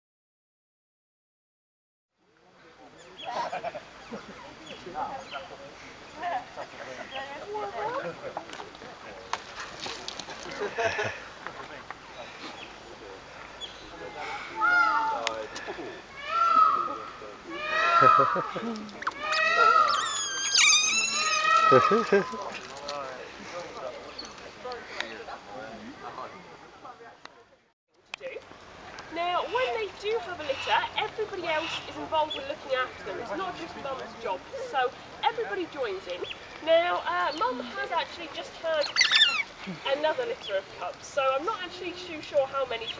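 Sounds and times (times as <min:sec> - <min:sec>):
otters chirping and squeaking: 0:19.0 - 0:22.2, 0:38.8 - 0:39.6.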